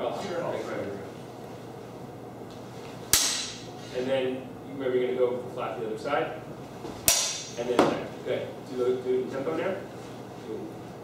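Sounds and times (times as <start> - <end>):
sword blades clashing: 3.1 - 3.7, 7.1 - 7.6.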